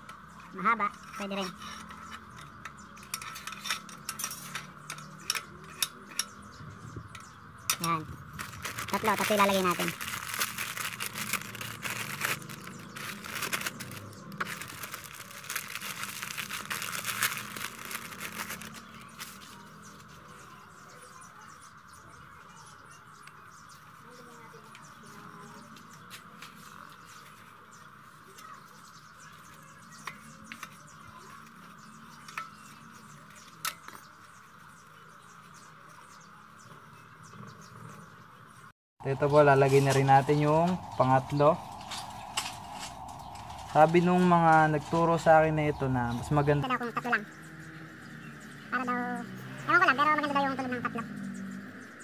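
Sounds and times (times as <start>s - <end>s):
plastic packet crinkling: 8.3s - 19.6s.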